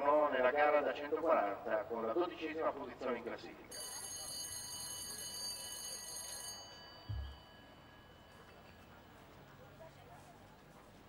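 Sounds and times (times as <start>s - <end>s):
signal bell ringing: 3.7s - 9.3s
low thump: 7.1s - 7.4s.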